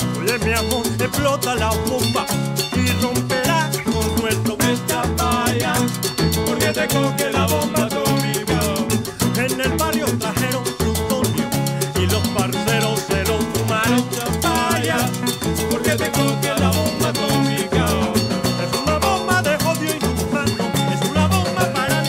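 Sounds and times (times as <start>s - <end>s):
electric bass line: 0.0s - 22.0s.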